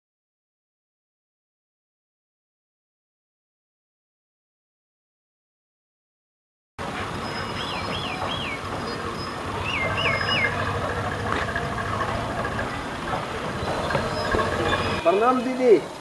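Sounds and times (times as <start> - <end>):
outdoor background rumble: 6.8 - 15.2.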